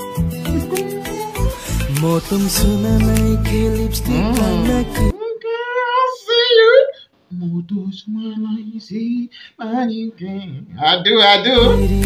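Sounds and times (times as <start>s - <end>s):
music with heavy bass line: 1.7s - 5.1s, 11.7s - 12.0s
person singing high notes: 4.0s - 5.2s.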